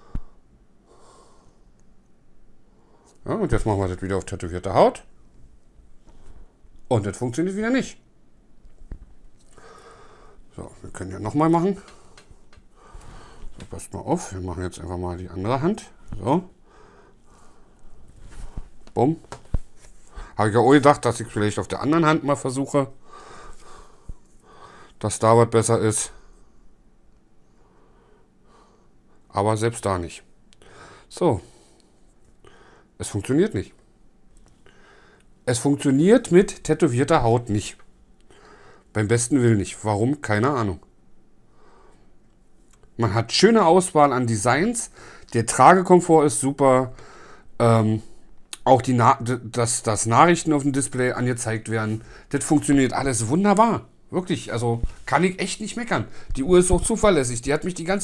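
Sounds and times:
person speaking: 3.1s - 5.2s, 6.9s - 8.1s, 10.5s - 12.6s, 13.2s - 16.6s, 18.3s - 23.9s, 35.4s - 37.9s, 47.6s - 58.0s.

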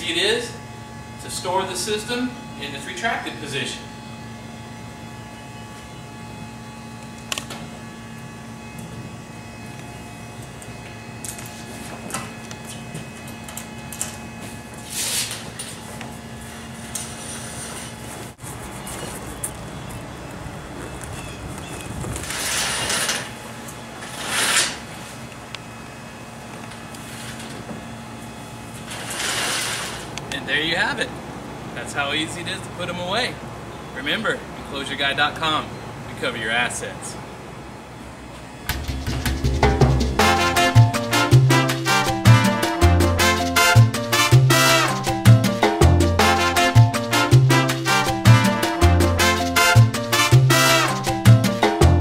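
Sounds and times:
steady low hum: 0.0s - 34.7s, 36.9s - 52.0s
vinyl curtain sliding on track: 22.2s - 23.3s, 24.0s - 25.2s, 28.8s - 30.2s.

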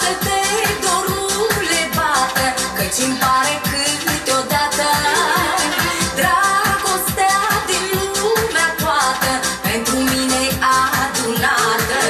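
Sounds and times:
fast dance beat backing track: 0.0s - 12.0s
woman singing pop song: 0.0s - 12.0s.

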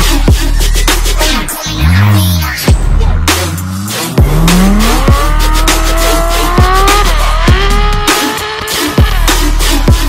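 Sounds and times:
car engine revving: 0.0s - 10.0s
electronic music with deep bass: 0.0s - 10.0s.

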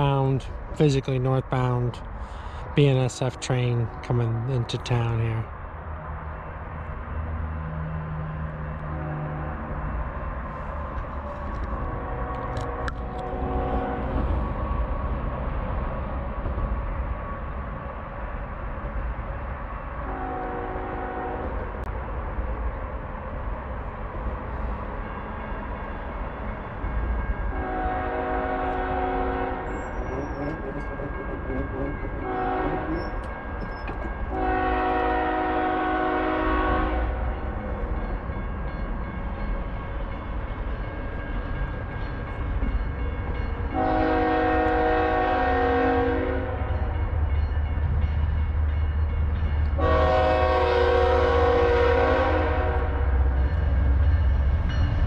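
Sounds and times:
low rumble of train: 0.0s - 55.0s
train horn blasts: 8.8s - 9.8s, 13.1s - 14.2s, 20.0s - 21.7s, 27.5s - 30.6s, 32.2s - 33.2s, 34.3s - 37.4s, 43.7s - 46.7s, 49.8s - 53.2s.

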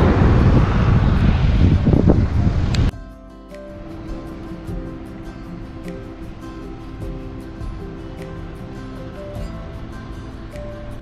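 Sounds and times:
wind buffeting microphone: 0.0s - 2.9s
soft background music: 2.9s - 11.0s.

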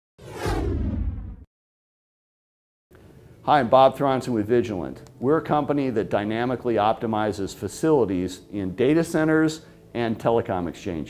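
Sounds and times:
downward whoosh with deep rumble: 0.2s - 1.5s.

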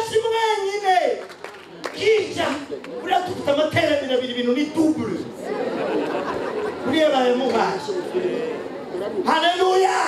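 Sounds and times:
crowd chatter: 0.8s - 10.0s.

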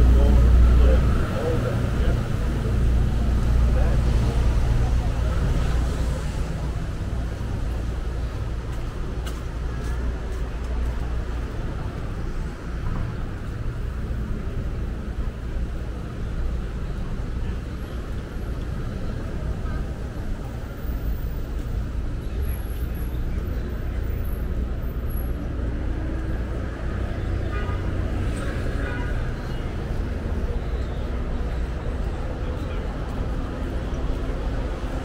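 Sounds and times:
passing cars and buses rumble: 0.0s - 35.0s.

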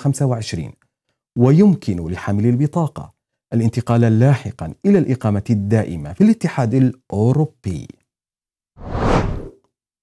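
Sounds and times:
whoosh sound effect: 8.8s - 9.5s.

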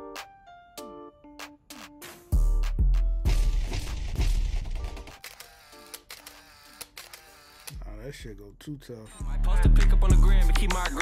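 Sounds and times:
camera shutter clicks: 5.1s - 7.8s.

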